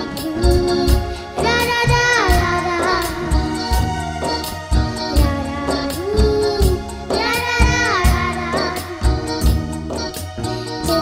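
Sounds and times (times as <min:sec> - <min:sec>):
girl singing: 0:00.0 - 0:11.0
live band with drum beat: 0:00.0 - 0:11.0.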